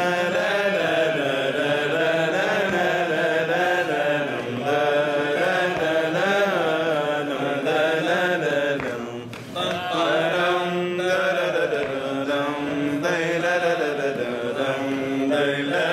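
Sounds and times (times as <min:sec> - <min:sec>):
man singing melismatic chant: 0:00.0 - 0:15.9.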